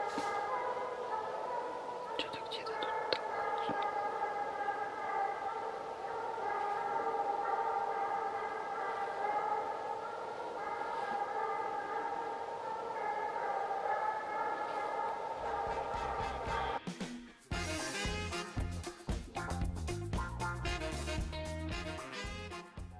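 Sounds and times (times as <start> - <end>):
hounds howling: 0.0 - 16.8.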